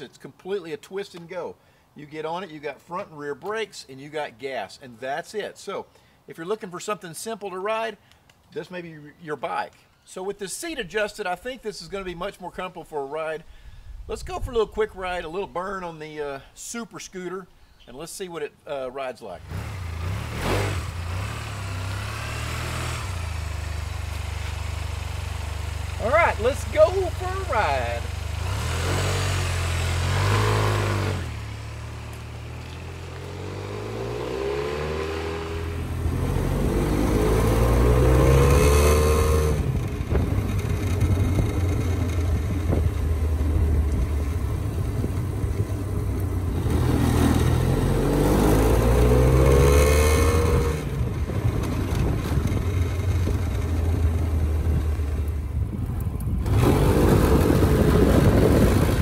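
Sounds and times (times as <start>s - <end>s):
scooter engine accelerating: 19.4s - 59.0s
wind rushing over microphone: 39.4s - 47.4s, 54.6s - 59.0s.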